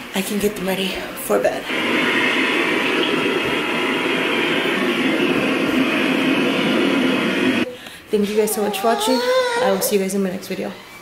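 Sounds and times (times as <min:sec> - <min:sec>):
loud rushing noise: 0:01.7 - 0:07.7.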